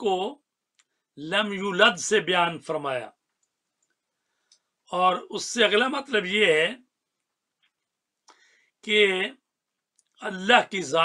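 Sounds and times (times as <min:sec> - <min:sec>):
man speaking: 0:00.0 - 0:00.5, 0:01.1 - 0:03.2, 0:04.8 - 0:06.9, 0:08.8 - 0:09.5, 0:10.2 - 0:11.0.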